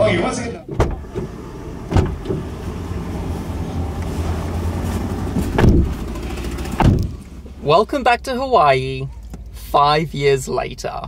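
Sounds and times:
car doors opening and shutting: 0.1 - 7.6.

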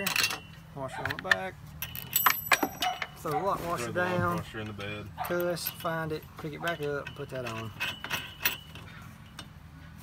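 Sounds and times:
metal washers and nut clinking: 0.0 - 3.5, 4.3 - 9.6.

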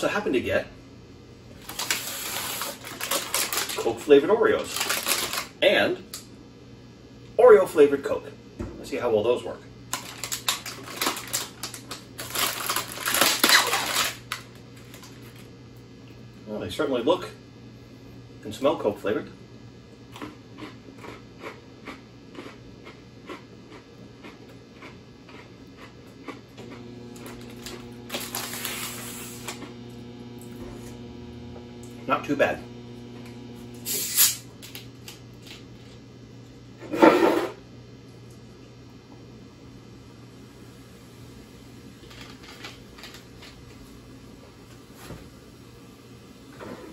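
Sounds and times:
plastic wrapper tearing and crinkling: 1.6 - 5.6, 9.9 - 15.5, 27.4 - 29.6, 33.9 - 35.9, 42.0 - 43.6
carbonation hissing: 33.7 - 34.5.

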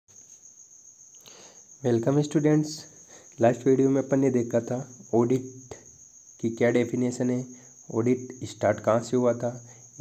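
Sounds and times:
low background hiss: 0.1 - 10.0
person speaking: 1.8 - 10.0.

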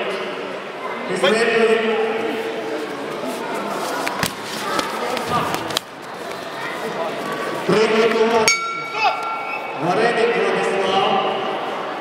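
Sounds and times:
men's voices in a hall: 0.9 - 3.9, 6.6 - 11.9.

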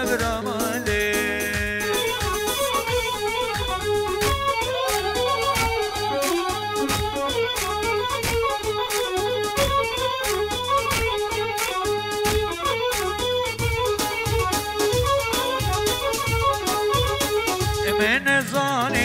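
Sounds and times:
steady dance beat: 0.0 - 18.1
electronic keyboard melody: 0.0 - 19.0.

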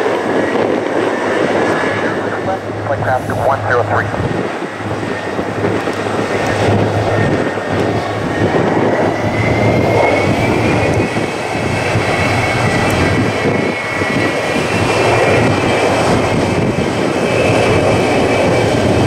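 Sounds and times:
jet engines rumbling: 0.0 - 19.0.

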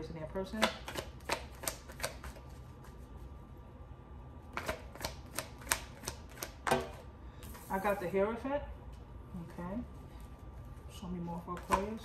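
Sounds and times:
cards being shuffled: 0.9 - 3.0.

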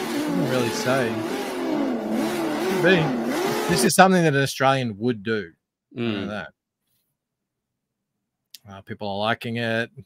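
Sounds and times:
toy motor revving: 0.0 - 3.9.

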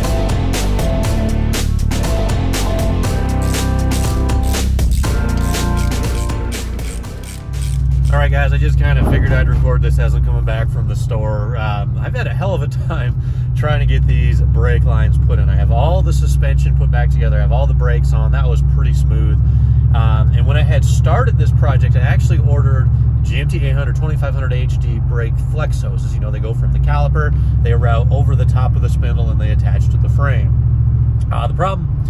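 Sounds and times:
background music: 0.0 - 8.2
vehicle engine and road drone: 0.0 - 32.0
man talking: 8.1 - 19.3.

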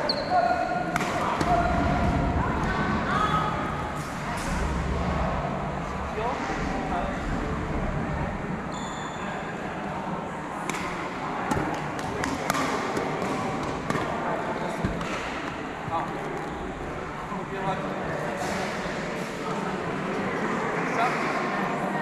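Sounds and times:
background chatter: 0.0 - 22.0
rackets striking shuttlecocks: 10.6 - 14.2.

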